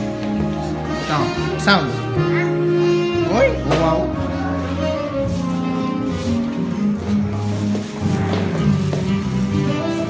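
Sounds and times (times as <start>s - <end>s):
music through loudspeaker: 0.0s - 10.0s.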